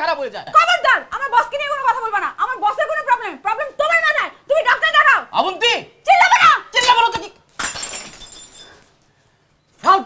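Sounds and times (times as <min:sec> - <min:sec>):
teacup smashing on tiled floor: 0:07.5 - 0:09.0
pieces clattering and ringing: 0:07.6 - 0:09.1.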